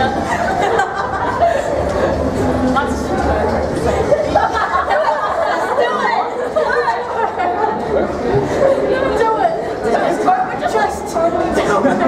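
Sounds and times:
overlapping group chatter: 0.0s - 12.0s.

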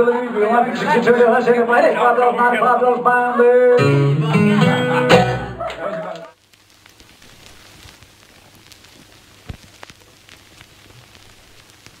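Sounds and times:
string band strummed chord: 3.8s - 5.6s
small crackles and clicks: 6.3s - 12.0s
faint hiss: 6.4s - 12.0s.

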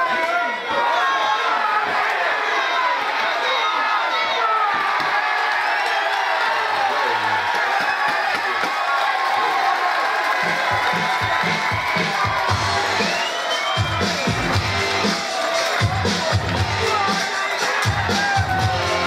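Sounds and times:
crowd cheering and shouting: 0.0s - 19.0s
music with heavy beat: 10.4s - 19.0s.

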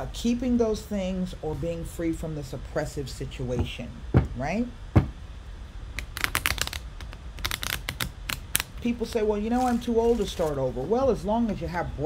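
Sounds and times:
cards being shuffled: 6.0s - 10.6s.

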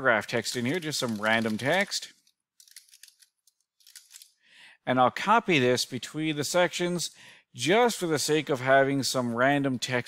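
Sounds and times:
person speaking: 0.0s - 2.2s
person breathing: 4.4s - 4.9s, 7.1s - 7.6s.

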